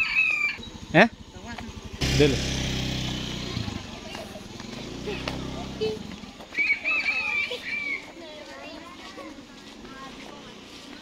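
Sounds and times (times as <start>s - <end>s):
children shouting: 0.0s - 0.6s, 4.8s - 10.2s
small engine humming: 0.0s - 8.0s.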